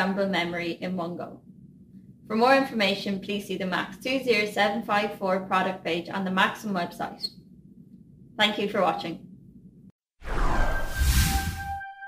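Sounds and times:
whoosh with deep low end: 0:10.2 - 0:11.7.

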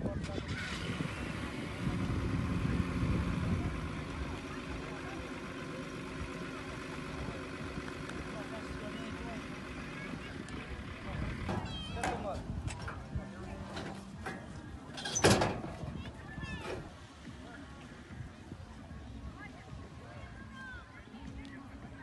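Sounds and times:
steady background noise: 0:00.0 - 0:22.0.

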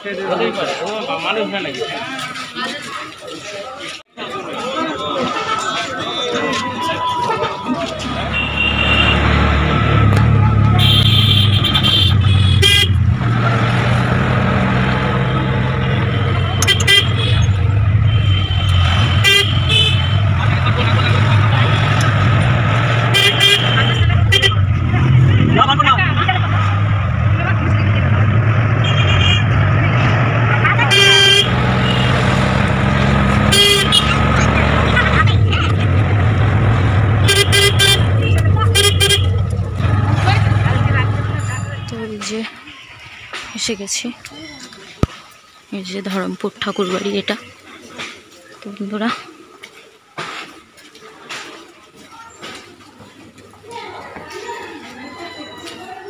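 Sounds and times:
auto-rickshaw engine running: 0:08.0 - 0:42.3.

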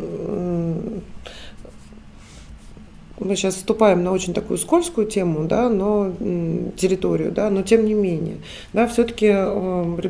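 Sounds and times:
woman's hesitation hum: 0:00.0 - 0:01.8
short breath: 0:01.2 - 0:01.6, 0:08.4 - 0:08.8.

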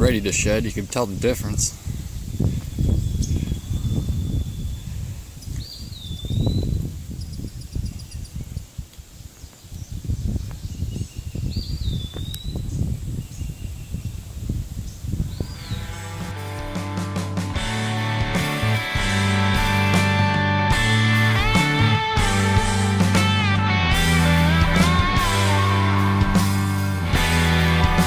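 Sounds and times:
low rumbling microphone noise: 0:00.0 - 0:08.6
music: 0:15.6 - 0:28.0.

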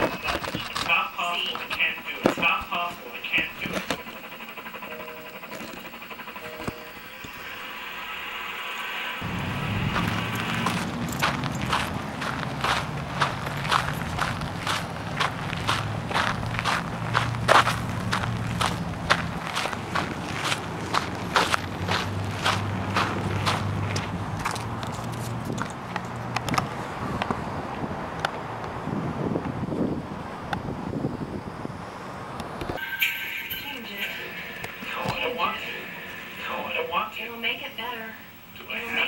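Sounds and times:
voice: 0:00.0 - 0:04.4, 0:33.1 - 0:39.0
low steady hum: 0:00.0 - 0:24.6, 0:32.8 - 0:39.0
footsteps on pavement: 0:09.6 - 0:27.4.

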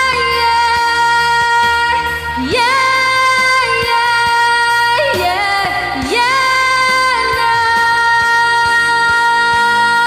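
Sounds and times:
pop ballad backing track: 0:00.0 - 0:10.0.

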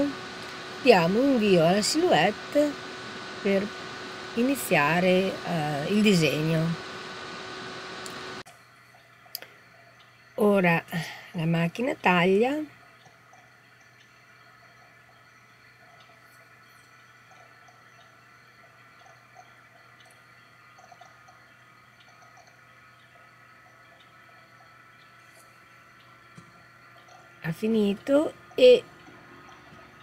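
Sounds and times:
cutting plotter motor whine: 0:00.0 - 0:08.4
light mechanical ticks: 0:08.0 - 0:10.4, 0:11.7 - 0:30.0.

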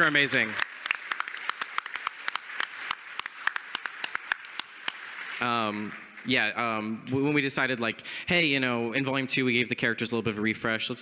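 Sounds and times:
audience applauding: 0:00.0 - 0:06.9.

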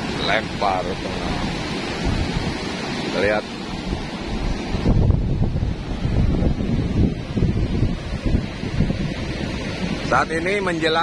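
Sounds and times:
sea surf rushing: 0:00.0 - 0:11.0
wind buffeting microphone: 0:00.0 - 0:11.0.

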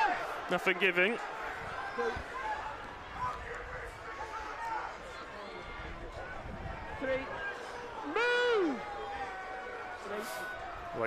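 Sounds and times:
crowd noise: 0:00.0 - 0:11.0
man shouting a call: 0:08.0 - 0:08.9.

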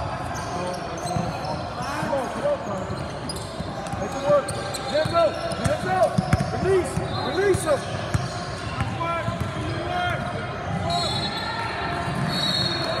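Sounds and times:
voices echoing in hall: 0:00.0 - 0:13.0
sneakers squeaking: 0:00.2 - 0:13.0.

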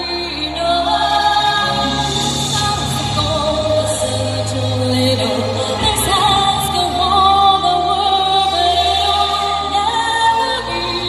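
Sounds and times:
amplified backing music: 0:00.0 - 0:11.0
woman singing into microphone: 0:00.0 - 0:11.0.

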